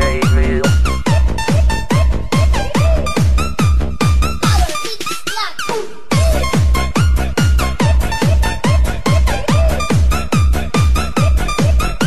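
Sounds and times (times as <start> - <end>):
booming kick beat: 0.0 - 4.9, 5.8 - 12.0.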